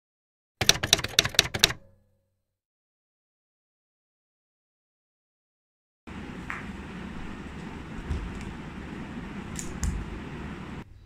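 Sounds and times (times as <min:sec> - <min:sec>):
typewriter key clacks: 0:00.6 - 0:01.9.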